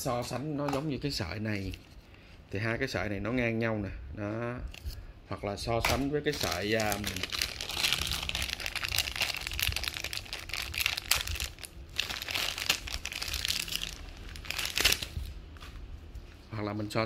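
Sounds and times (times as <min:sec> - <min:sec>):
plastic bag crinkling: 0:06.2 - 0:15.4.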